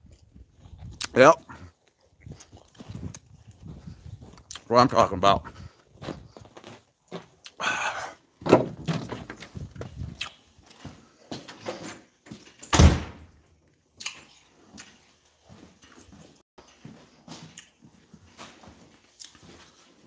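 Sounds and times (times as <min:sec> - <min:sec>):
door thud: 0:08.4 - 0:09.4, 0:12.7 - 0:13.3.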